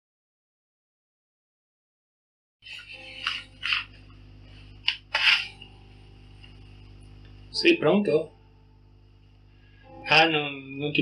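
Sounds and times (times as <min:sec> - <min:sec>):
faint ringing tone: 0:05.5 - 0:11.0.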